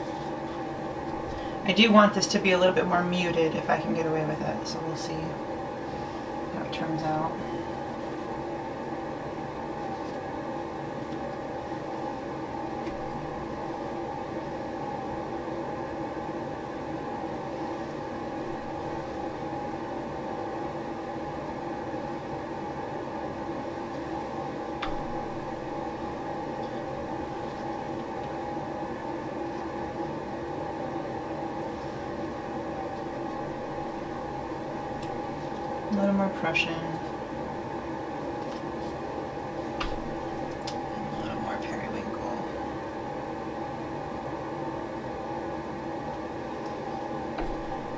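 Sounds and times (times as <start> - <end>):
mechanical hum and hiss: 0.0 - 47.9.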